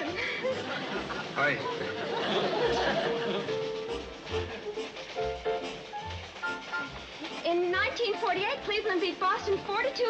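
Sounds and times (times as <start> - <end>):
light jazzy music: 0.0 - 10.0.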